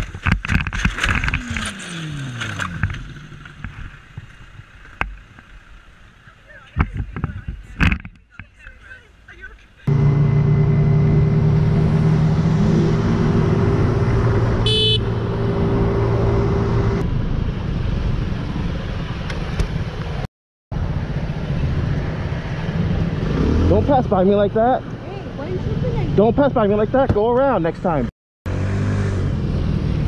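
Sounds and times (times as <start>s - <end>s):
wind and road noise: 0.0s - 30.0s
motorcycle engine running: 9.9s - 17.0s
short high horn beep: 14.6s - 15.4s.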